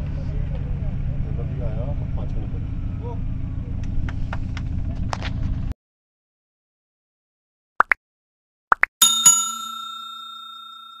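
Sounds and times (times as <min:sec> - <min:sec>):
bell dinging: 0:09.0 - 0:11.0.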